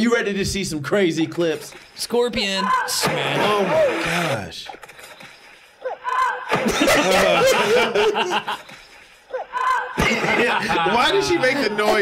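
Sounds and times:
woman crying oh: 0:05.8 - 0:06.6, 0:09.3 - 0:10.0.

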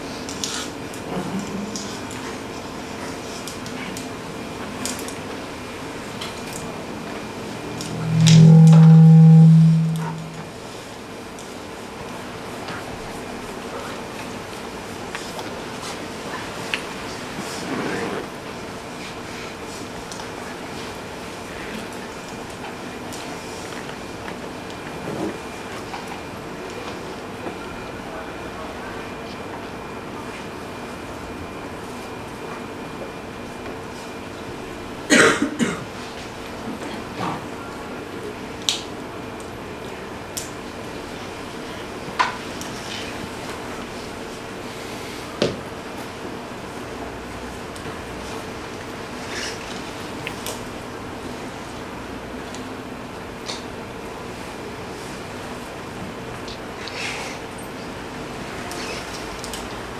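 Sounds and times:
loud low steady tone: 0:07.4 - 0:10.6
fainter higher tone: 0:07.5 - 0:10.6
person coughing: 0:35.1 - 0:35.8.

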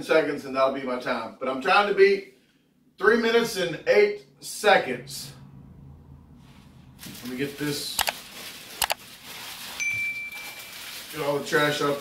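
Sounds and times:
paper wrappers rustling: 0:07.0 - 0:12.0
chime note: 0:09.8 - 0:10.8.

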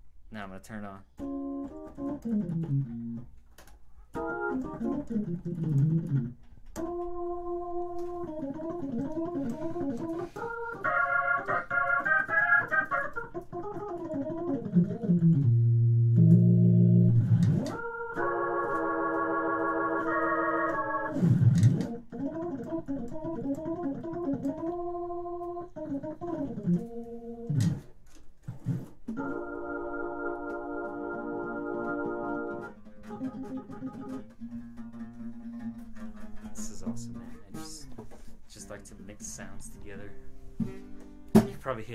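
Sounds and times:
organ chords: 0:01.1 - 0:03.3, 0:04.1 - 0:27.8, 0:28.6 - 0:34.3
low organ bass note: 0:15.4 - 0:17.5.

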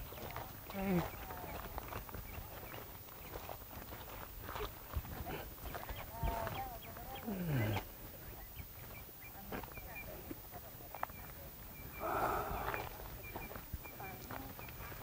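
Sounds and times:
faint voices: 0:00.0 - 0:15.0
footsteps on gravel: 0:00.0 - 0:15.0.

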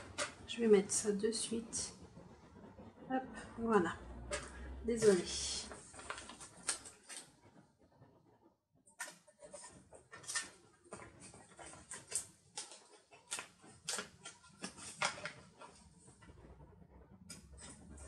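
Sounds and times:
paper pages crinkling: 0:04.3 - 0:07.3, 0:09.0 - 0:15.9.

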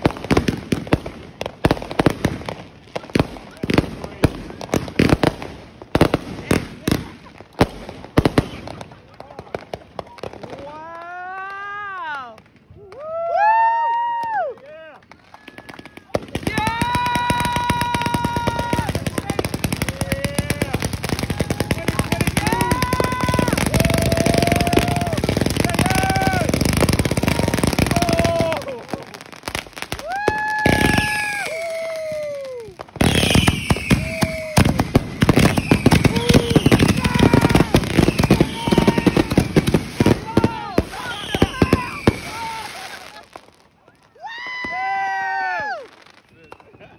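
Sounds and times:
fireworks crackling and popping: 0:00.0 - 0:46.9
people whooping and shouting: 0:09.4 - 0:46.9.

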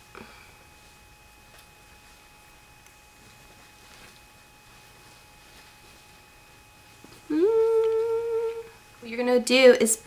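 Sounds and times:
woman humming: 0:07.2 - 0:08.8.

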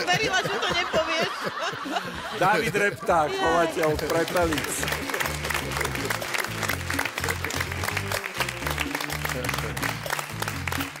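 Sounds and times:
upbeat music with bass line: 0:00.0 - 0:11.0
audience clapping: 0:03.4 - 0:11.0.

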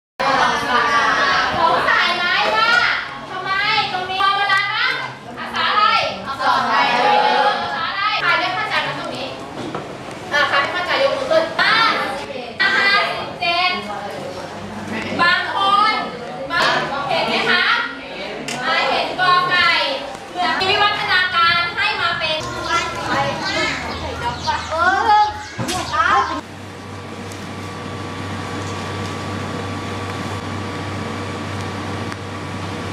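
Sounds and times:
children speaking: 0:00.2 - 0:09.6, 0:10.2 - 0:26.4
children talking over one another: 0:15.2 - 0:26.4.

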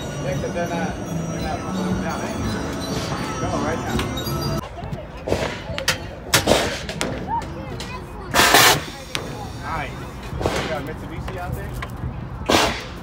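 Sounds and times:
carousel music: 0:00.0 - 0:04.8.

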